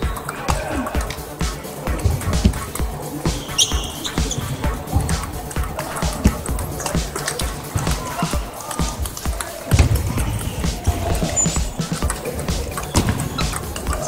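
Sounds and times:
hubbub of voices: 0.0 - 14.0
table tennis balls clicking: 0.0 - 14.0.

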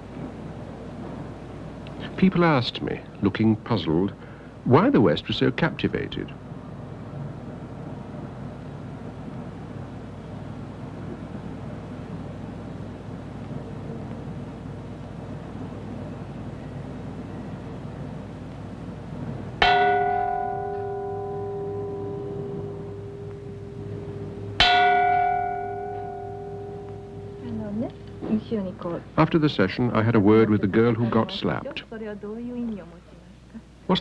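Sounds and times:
faint steady background: 0.0 - 34.0
temple chime plate ringing: 19.6 - 28.3.

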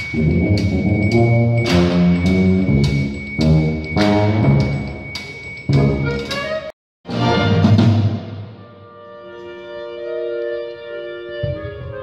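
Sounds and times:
brass band playing held chords: 0.0 - 5.1, 5.7 - 12.0.

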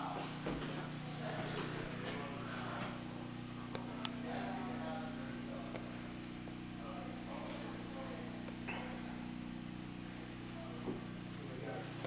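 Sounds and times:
low multi-tone hum: 0.0 - 12.0.

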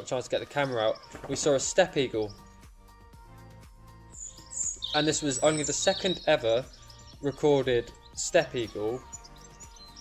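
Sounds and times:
small bird chirping: 0.0 - 2.6, 4.0 - 10.0
soft background music: 0.0 - 10.0.

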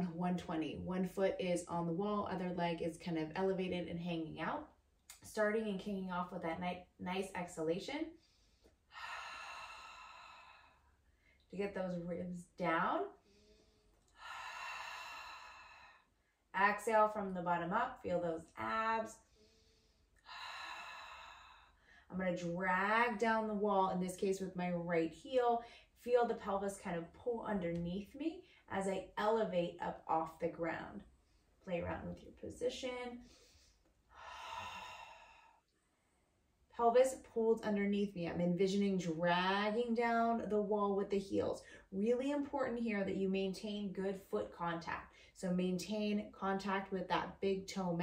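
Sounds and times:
woman exhaling slowly: 8.4 - 10.9, 13.2 - 16.1, 19.2 - 22.0, 33.2 - 35.6.

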